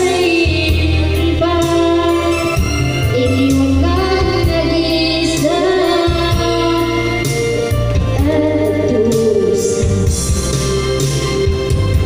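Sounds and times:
woman singing: 0.0s - 10.1s
backing music: 0.0s - 12.0s.

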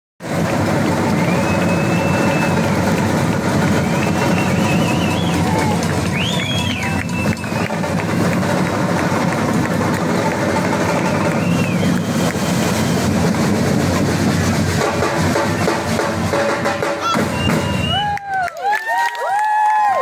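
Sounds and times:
bass and snare drums playing: 0.2s - 18.1s.

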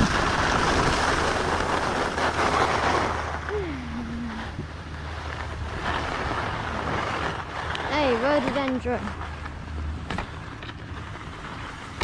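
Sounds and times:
skis sliding on packed snow: 0.0s - 9.8s, 10.4s - 12.0s.

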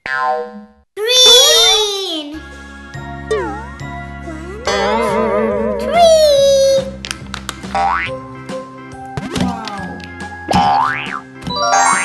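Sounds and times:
light children's music: 1.1s - 12.0s
cartoon falling pitch effect: 3.3s - 3.8s, 4.5s - 6.1s, 11.5s - 12.0s.

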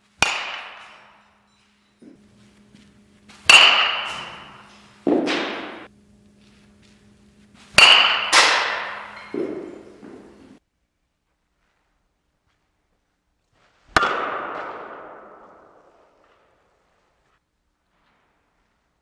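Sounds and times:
metal bat hitting ball: 0.2s - 2.2s, 3.3s - 5.9s, 7.7s - 10.6s, 13.9s - 16.0s.

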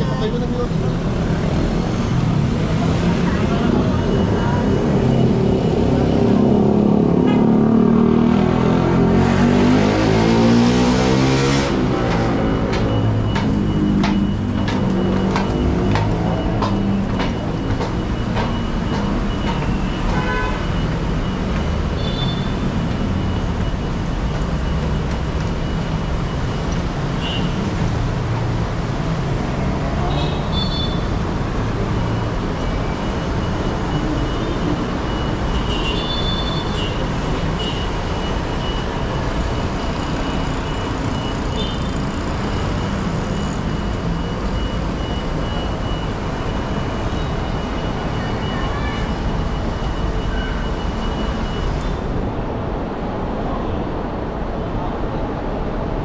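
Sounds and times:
vehicle engines passing: 0.0s - 56.0s.

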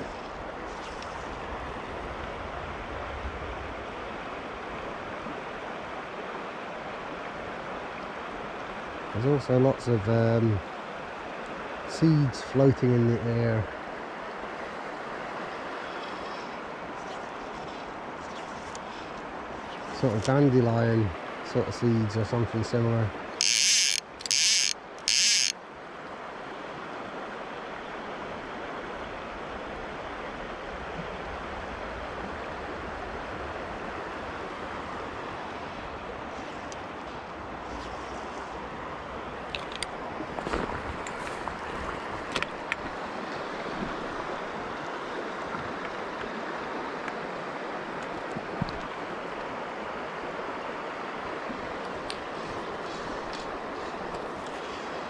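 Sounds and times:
river water rushing: 0.0s - 55.0s
faint ticks: 17.1s - 19.2s
fly reel ratchet buzzing: 23.4s - 25.6s.

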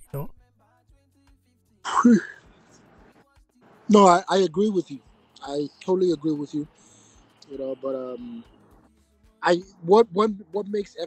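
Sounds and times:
man speaking: 0.0s - 0.4s, 1.9s - 2.4s, 3.9s - 6.8s, 7.4s - 8.5s, 9.4s - 11.0s
man clearing throat: 1.9s - 2.4s.

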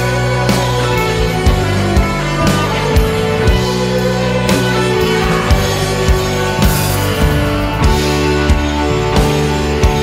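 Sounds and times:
country rock band playing: 0.0s - 10.0s.

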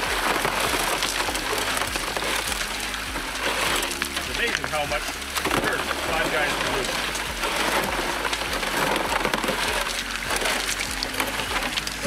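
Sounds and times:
gravel clattering: 0.0s - 12.0s
water rushing over screen: 0.0s - 12.0s.

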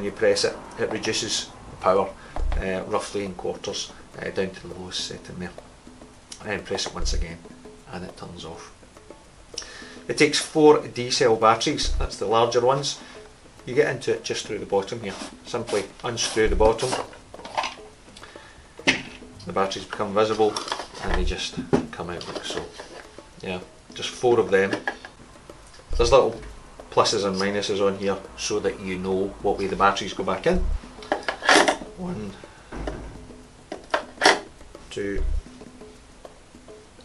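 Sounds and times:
quiet background music: 0.0s - 37.0s
cap being unscrewed: 15.0s - 17.9s, 19.9s - 21.3s, 22.2s - 23.2s, 31.0s - 31.9s, 33.7s - 34.5s.

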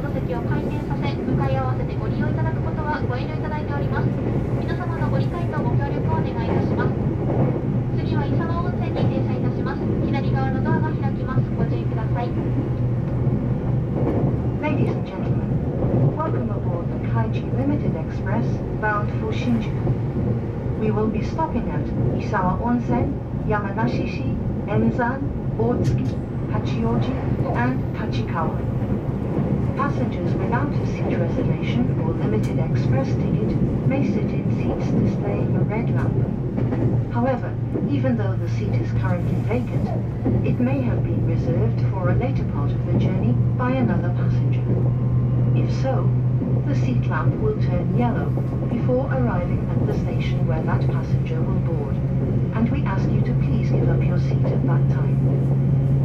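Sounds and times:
train wheels rumbling on rails: 0.0s - 56.0s
people's voices: 20.8s - 28.7s, 45.5s - 55.2s.

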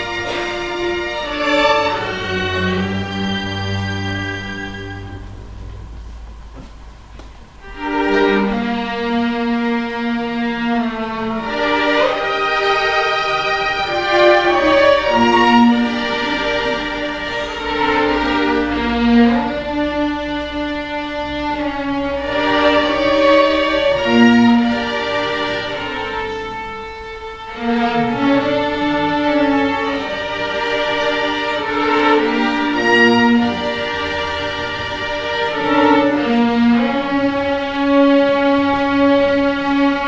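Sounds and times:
string orchestra playing: 0.0s - 40.0s.

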